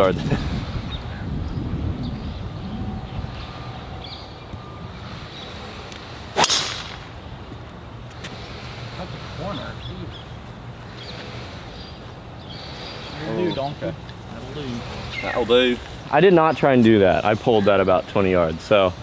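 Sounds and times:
golf driver striking ball: 0:06.4 - 0:07.1.

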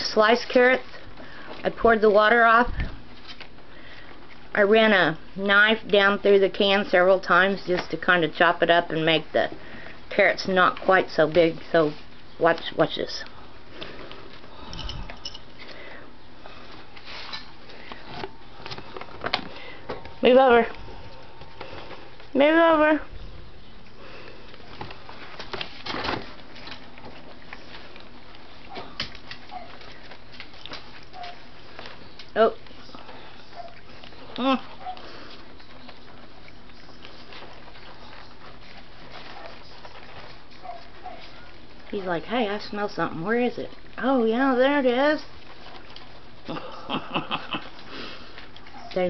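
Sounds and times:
puppies sniffing and chewing: 0:00.0 - 0:49.0.

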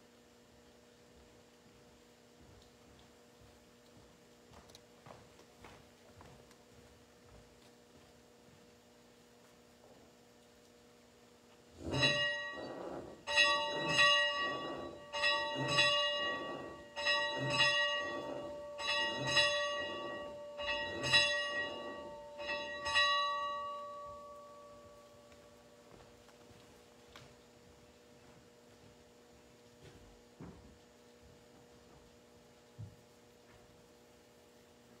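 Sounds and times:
church bell ringing: 0:11.8 - 0:25.9.

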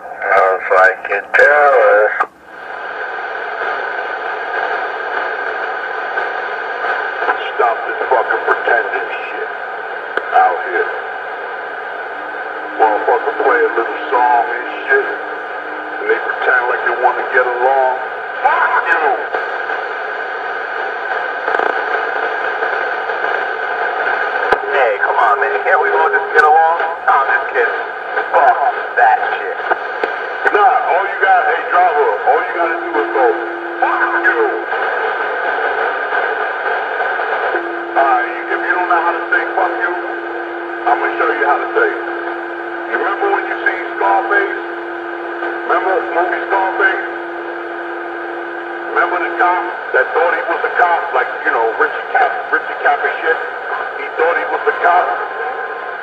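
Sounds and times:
steady hum: 0:00.0 - 0:56.0
voices through small speaker: 0:00.0 - 0:56.0
steady low tone: 0:31.1 - 0:52.5.

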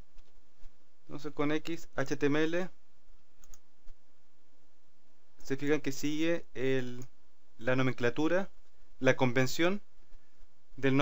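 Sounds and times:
low background noise: 0:00.0 - 0:11.0
computer mouse clicks: 0:03.2 - 0:04.0.

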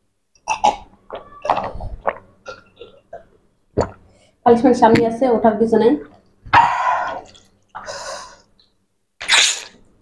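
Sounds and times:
person eating breathy sounds: 0:06.6 - 0:08.5.

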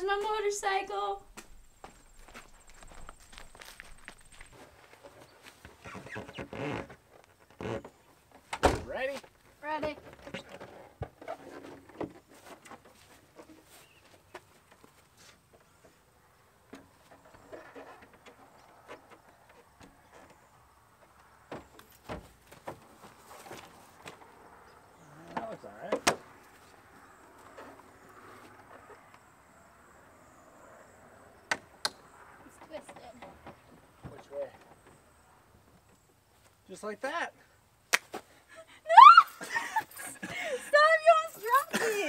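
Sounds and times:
footsteps: 0:00.0 - 0:06.8
rustling: 0:01.2 - 0:16.0, 0:21.7 - 0:24.3
voices: 0:38.9 - 0:42.0.

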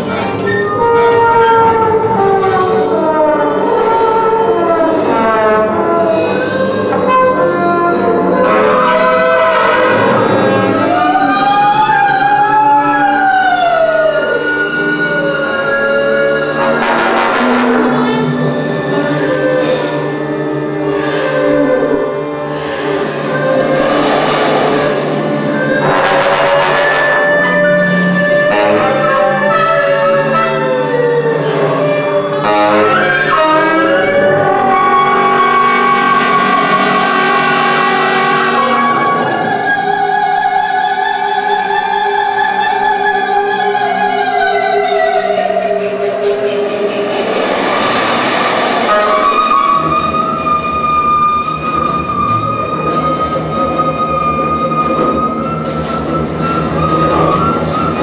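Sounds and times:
sustained instrument tones: 0:00.0 - 0:58.0.

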